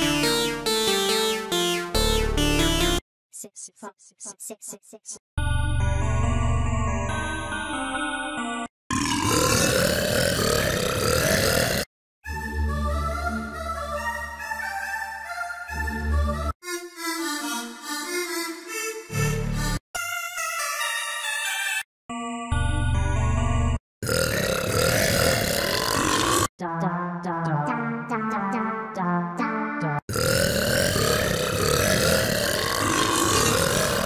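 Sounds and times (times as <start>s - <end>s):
bright synthesizer chord: 0.0s - 3.0s
synth chord of burps: 8.9s - 11.9s, 24.0s - 26.5s, 30.1s - 34.0s.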